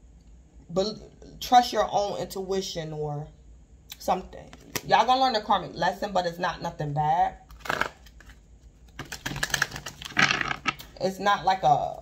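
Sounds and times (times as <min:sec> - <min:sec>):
cards being shuffled: 0:07.5 - 0:11.0.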